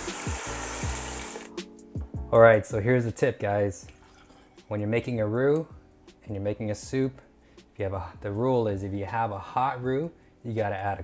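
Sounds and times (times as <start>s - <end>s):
broth pouring and sizzling: 0.0s - 1.6s
background music with beat: 0.0s - 9.2s.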